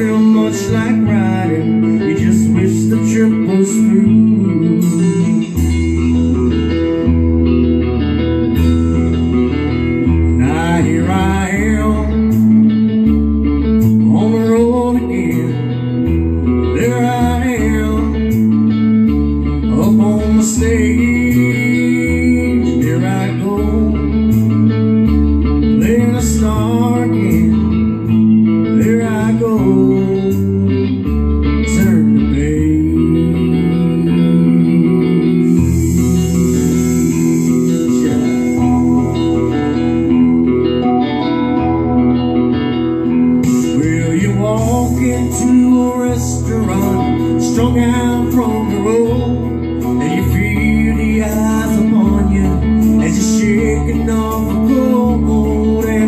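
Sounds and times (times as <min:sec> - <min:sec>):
rock guitar with bass and drums: 0:00.0 - 0:56.0.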